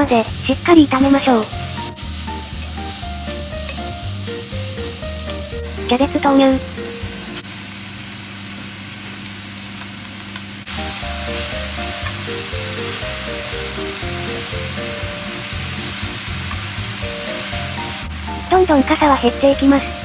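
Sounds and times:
background music with bassline: 0.0 - 7.4, 10.7 - 20.0
chopsticks stirring: 0.0 - 7.4, 10.7 - 20.0
vegetables sizzling in frying pan: 0.0 - 20.0.

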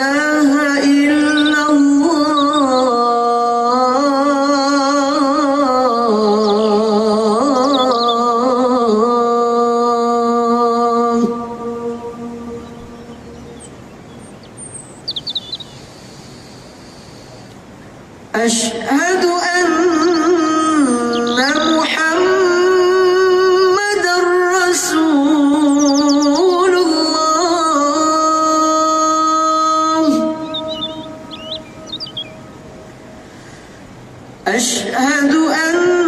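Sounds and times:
outdoor background hiss: 0.0 - 36.0
bird chirping: 0.7 - 3.0, 6.2 - 8.4, 12.4 - 17.6, 19.9 - 22.0, 25.4 - 28.3, 30.0 - 32.8.

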